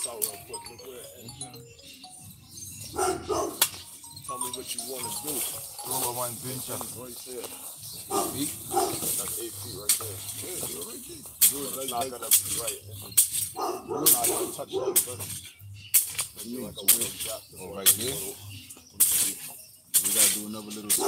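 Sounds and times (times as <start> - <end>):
people talking: 0.0 - 1.8, 4.1 - 13.1, 13.9 - 15.3, 16.4 - 21.0
background music: 0.0 - 19.2.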